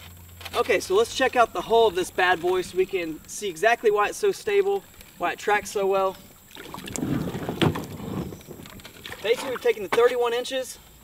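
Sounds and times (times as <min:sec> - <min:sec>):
kayak splashing and rubbing: 0:06.4 - 0:10.0.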